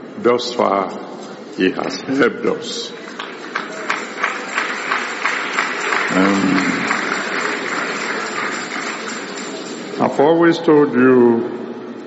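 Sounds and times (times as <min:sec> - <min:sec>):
congregation applauding: 0:02.6 - 0:10.4.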